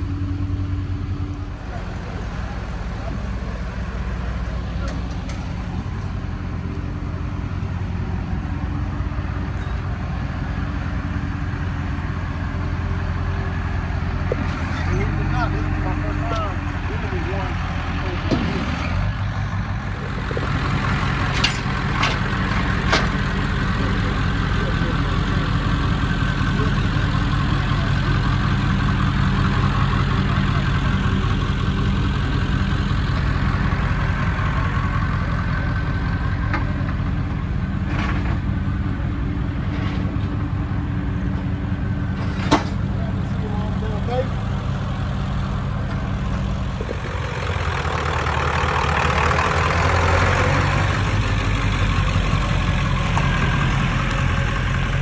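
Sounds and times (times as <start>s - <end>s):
truck engine idling: 0.0s - 55.0s.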